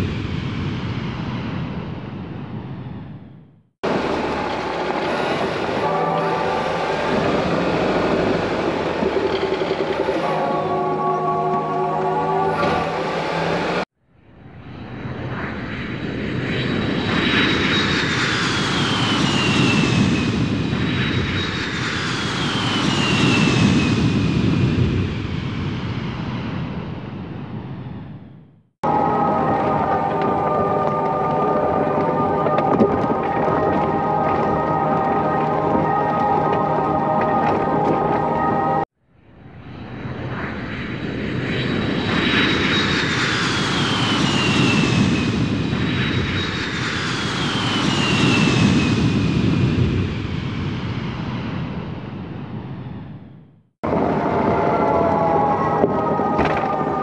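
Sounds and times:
whooshes with falling whistle: 14.7s - 24.6s, 39.7s - 49.6s.

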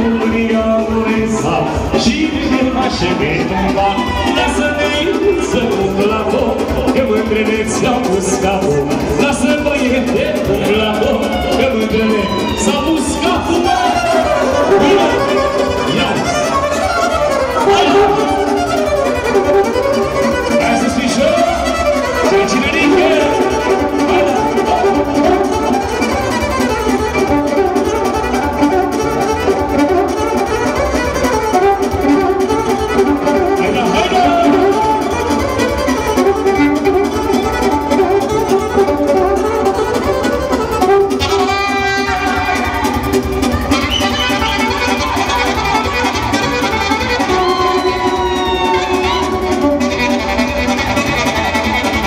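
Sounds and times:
band playing folk dance music: 0.0s - 52.0s
saxophone melody: 0.0s - 52.0s.

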